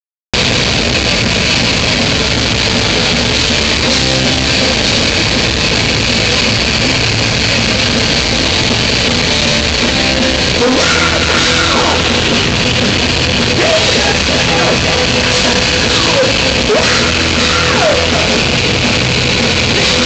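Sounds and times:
electric guitars: 0.4s - 20.0s
heavy metal band playing live: 0.4s - 20.0s.

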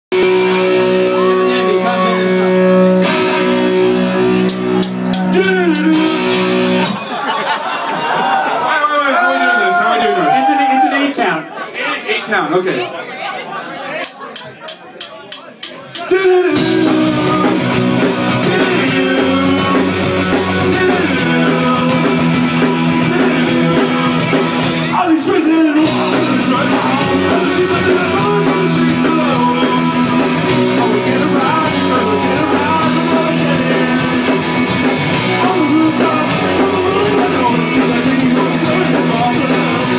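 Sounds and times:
electric guitars holding chord: 0.1s - 7.0s, 16.6s - 25.0s, 25.8s - 39.9s
live punk rock band playing: 0.1s - 8.2s, 14.0s - 39.9s
singer's voice: 0.2s - 6.8s, 8.2s - 12.9s, 14.1s - 39.9s.

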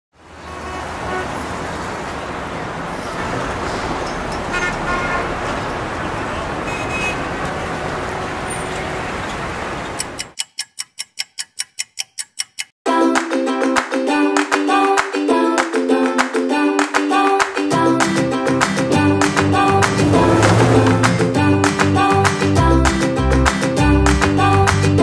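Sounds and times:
road traffic rumble: 0.1s - 10.4s, 18.9s - 23.5s
car horns: 0.2s - 10.3s, 19.8s - 21.4s
fast sharp ticks: 10.0s - 12.7s.

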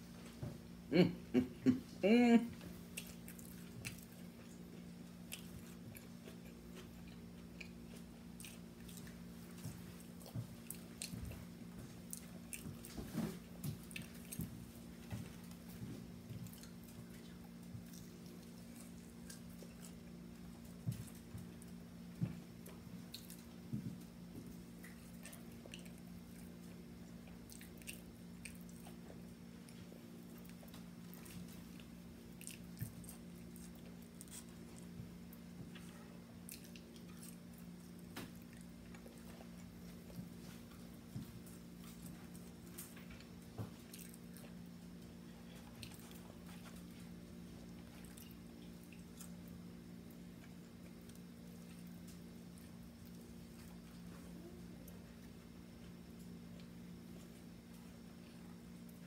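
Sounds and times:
person chewing: 2.8s - 21.8s, 22.6s - 54.5s.

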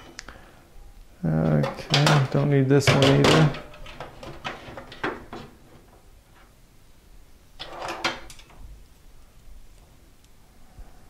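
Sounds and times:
cables knocking in metal case: 1.5s - 5.6s.

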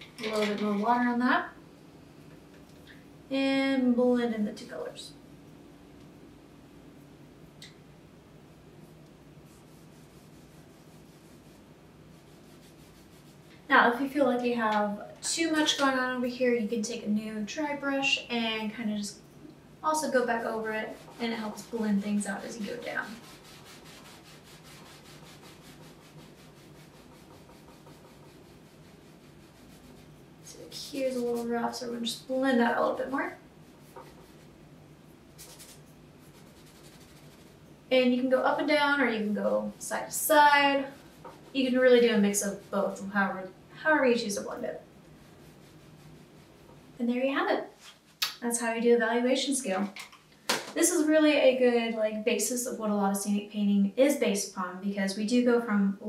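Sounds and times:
low room hum: 0.0s - 56.0s
paintbrush rubbing over canvas: 8.8s - 13.5s, 19.9s - 34.7s, 35.3s - 43.1s, 44.0s - 47.0s.

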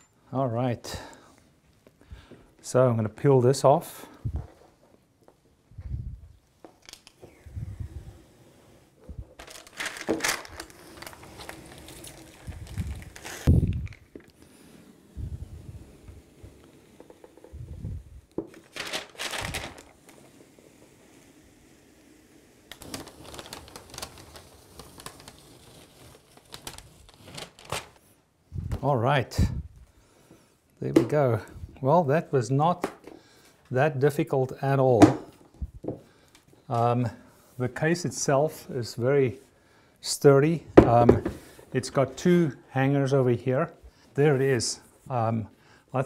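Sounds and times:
plastic film peeling and crinkling: 9.2s - 14.4s, 18.4s - 21.0s, 21.6s - 28.0s.

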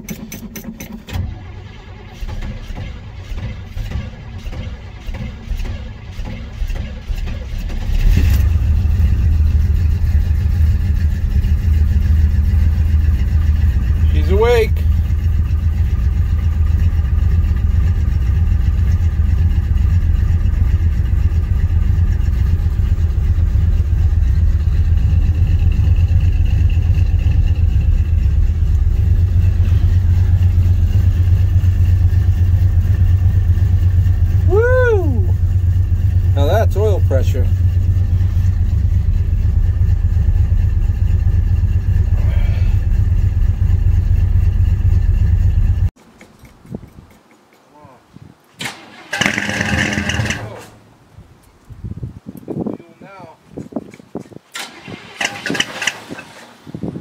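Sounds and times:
car engine starting and running: 0.0s - 46.0s, 48.6s - 51.0s, 54.5s - 57.0s.

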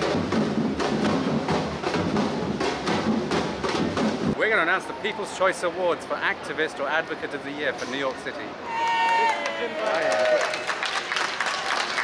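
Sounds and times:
drum group playing: 0.0s - 4.7s.

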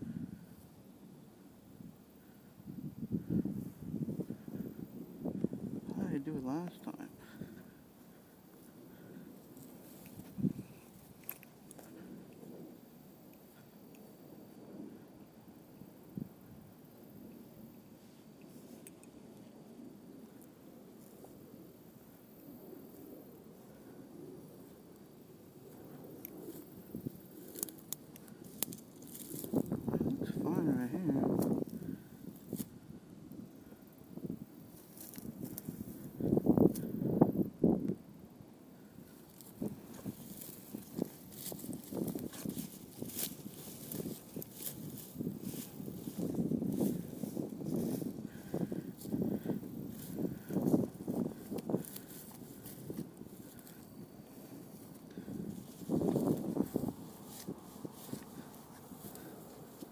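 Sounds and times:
dry grass rustling and crackling: 2.2s - 15.1s, 16.9s - 38.0s, 38.8s - 59.9s.

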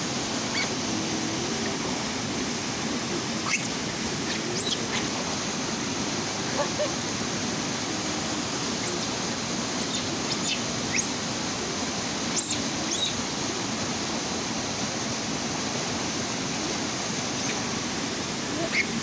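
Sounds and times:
river water flowing: 0.0s - 19.0s.

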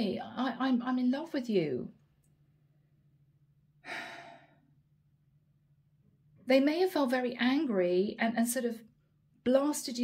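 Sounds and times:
woman sighing: 3.8s - 4.6s.

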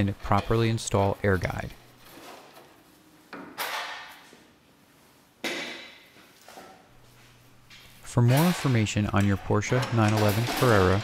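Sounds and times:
hands and tools handling metal: 7.7s - 11.0s.

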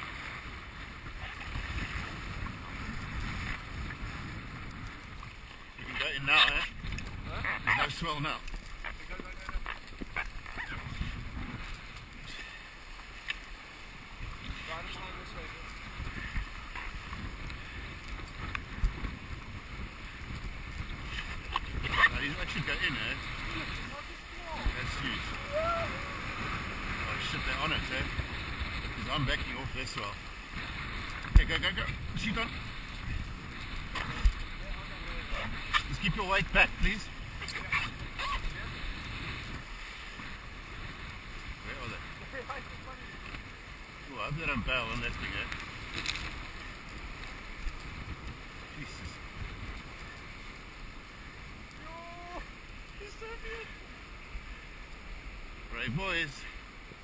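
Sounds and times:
wind buffeting microphone: 0.0s - 56.0s
water rushing and splashing: 0.0s - 57.0s.

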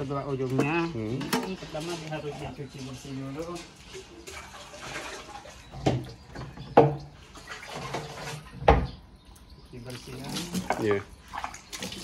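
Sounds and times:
water pouring and splashing in sink: 0.5s - 8.8s, 9.9s - 12.0s
water scooped from drum: 0.8s - 6.2s, 7.2s - 8.6s, 9.9s - 12.0s.

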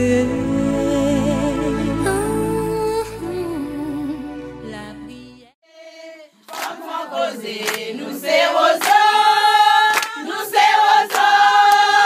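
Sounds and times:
choir singing held notes: 5.8s - 12.0s.

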